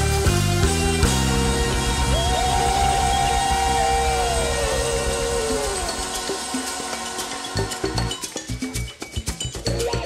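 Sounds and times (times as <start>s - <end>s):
live band with electric bass: 0.0s - 6.0s.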